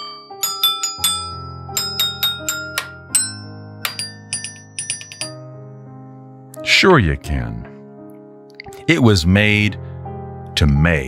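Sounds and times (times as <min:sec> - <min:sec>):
toy xylophone melody: 0:00.0 - 0:05.4.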